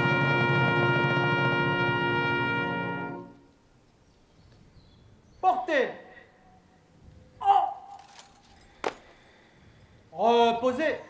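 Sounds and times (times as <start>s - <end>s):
brass band final chord: 0.0s - 3.4s
person shouting commands: 7.4s - 7.9s.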